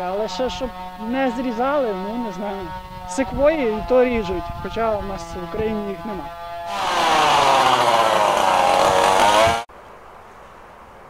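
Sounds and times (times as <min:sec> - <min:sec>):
chainsaw cutting branches: 0:00.0 - 0:09.7
faint outdoor background: 0:00.0 - 0:11.0.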